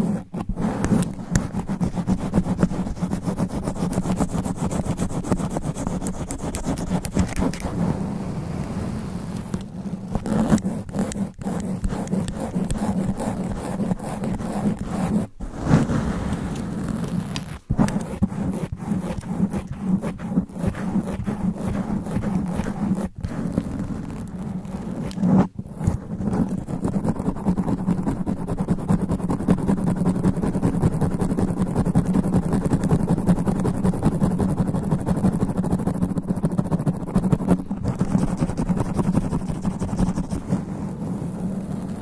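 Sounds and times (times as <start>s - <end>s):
fingernails scratching microphone cover: 0.0s - 42.0s.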